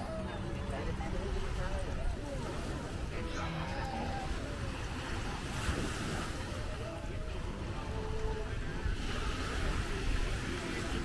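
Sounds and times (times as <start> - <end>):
faint distant voices: 0.0 - 11.0
small waves washing on shore: 0.0 - 11.0
wind rumble on microphone: 0.0 - 11.0.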